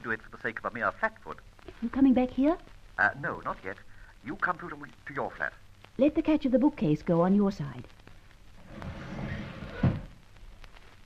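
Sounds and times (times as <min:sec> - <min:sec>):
bookcase door sliding open: 0:08.6 - 0:10.2
door thud: 0:09.5 - 0:10.2.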